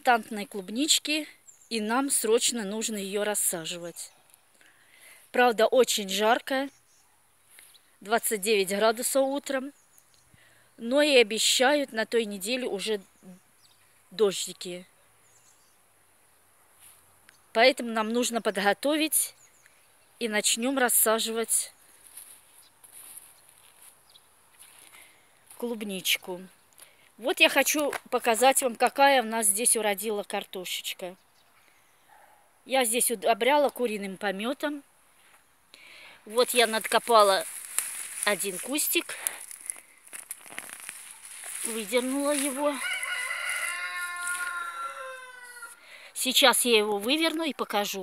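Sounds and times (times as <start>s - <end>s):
bird chirp: 0.0s - 4.8s, 6.0s - 11.2s, 12.3s - 18.6s, 19.2s - 26.9s, 30.1s - 32.4s
rustling plants: 16.7s - 18.4s, 20.2s - 28.5s, 34.4s - 45.8s
soft footsteps: 22.0s - 25.6s, 36.5s - 45.0s
rooster crowing: 42.7s - 45.8s.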